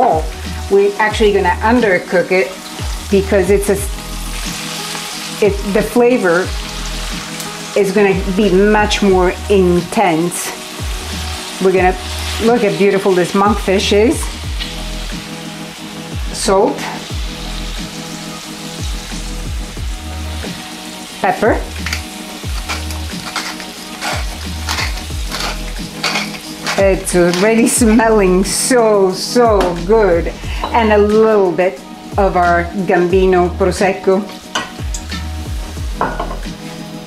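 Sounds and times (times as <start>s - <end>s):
background music: 0.0s - 37.0s
oil sizzling in a frying pan: 0.0s - 37.0s
music with bass beat: 13.5s - 15.3s, 18.8s - 20.7s, 29.5s - 31.2s, 34.7s - 37.0s.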